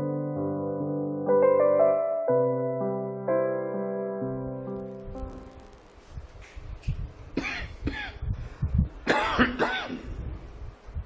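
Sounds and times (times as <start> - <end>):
man coughing: 7.4 - 8.2, 9.1 - 10.1
man clearing his throat: 9.1 - 10.2.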